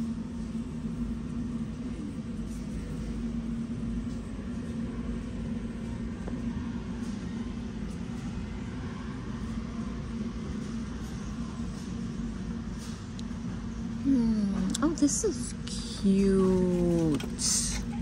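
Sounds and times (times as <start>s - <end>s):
constant low hum: 0.0s - 18.0s.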